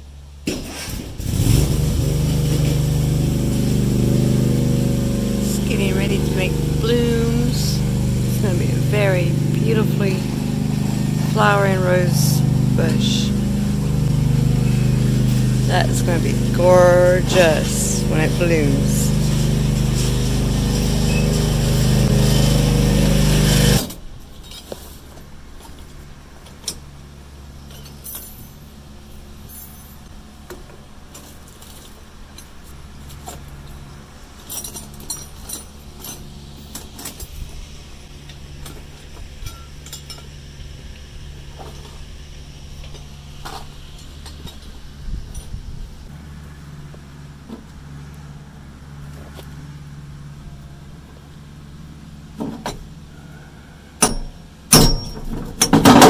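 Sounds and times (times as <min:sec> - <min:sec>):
engine idling: 0:00.0 - 0:24.1.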